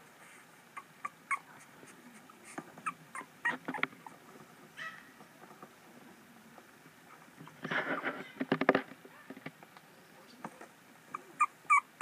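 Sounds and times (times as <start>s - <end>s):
puppy squeaking: 0.8s - 1.5s, 2.4s - 4.2s, 11.1s - 12.0s.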